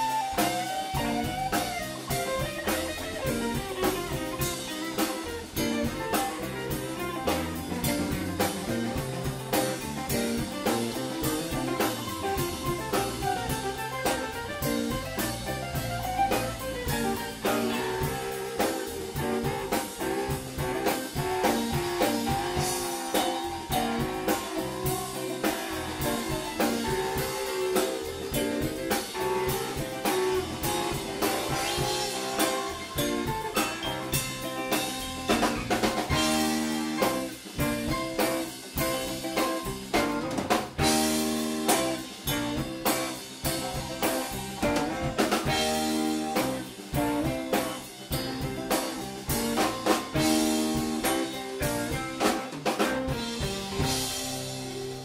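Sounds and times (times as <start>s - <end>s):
drum kit beat: 0.0s - 55.0s
live rock band playing: 0.0s - 55.0s.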